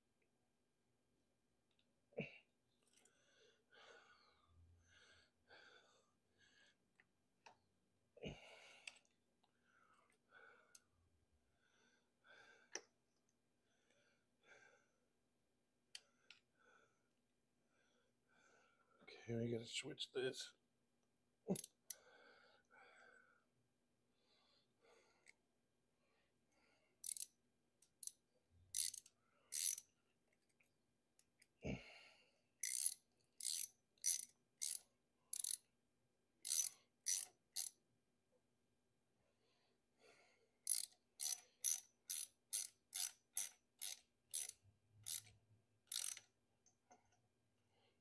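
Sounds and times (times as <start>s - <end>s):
ratchet wrench clicking: 27.0s - 29.9s, 32.6s - 35.7s, 36.4s - 37.8s, 40.6s - 46.3s.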